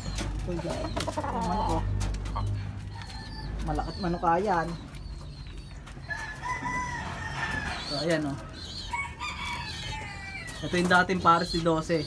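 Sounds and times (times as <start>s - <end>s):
rooster crowing: 6.1s - 7.9s, 8.8s - 10.6s.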